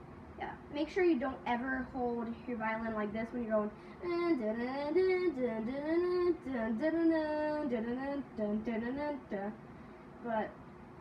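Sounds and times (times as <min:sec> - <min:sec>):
girl singing wordless tune: 0:00.4 - 0:10.6.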